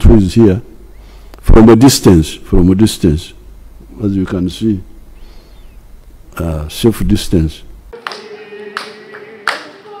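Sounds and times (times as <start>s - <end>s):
group of people clapping: 8.0s - 10.0s.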